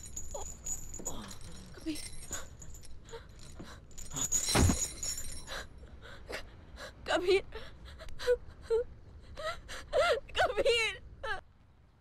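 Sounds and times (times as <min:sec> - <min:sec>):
woman sobbing and wailing: 0:00.1 - 0:11.4.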